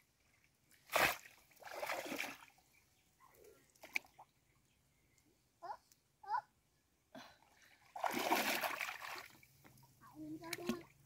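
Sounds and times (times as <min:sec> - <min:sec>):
muddy water splashing: 0:00.5 - 0:02.6, 0:07.6 - 0:09.6, 0:10.2 - 0:11.0.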